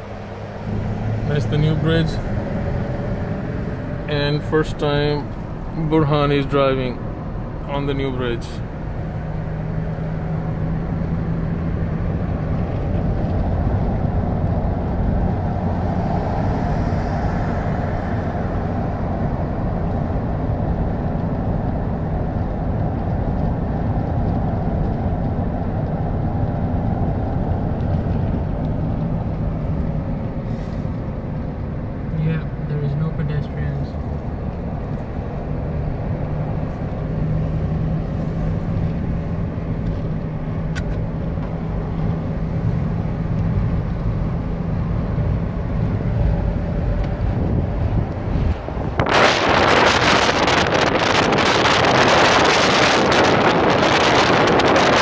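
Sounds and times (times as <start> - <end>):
car road and tyre noise: 0.0 - 55.0.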